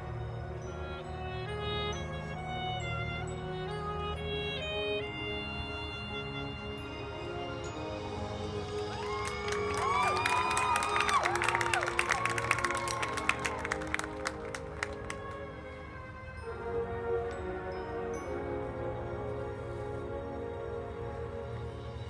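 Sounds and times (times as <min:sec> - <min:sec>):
marching band brass chords: 0:00.0 - 0:22.0
crowd whooping and cheering: 0:08.5 - 0:15.2
crowd clapping: 0:08.7 - 0:15.5.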